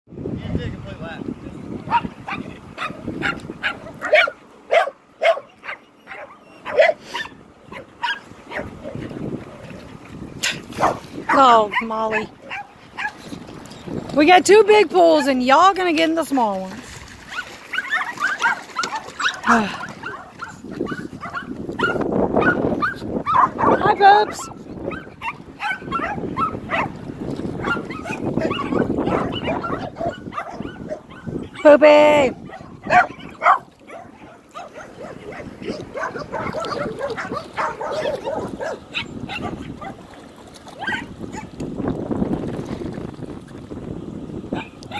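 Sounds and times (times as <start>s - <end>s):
dog barking: 1.9s - 9.0s, 10.8s - 13.2s, 17.3s - 26.9s, 27.6s - 31.7s, 32.4s - 40.0s, 40.8s - 41.5s.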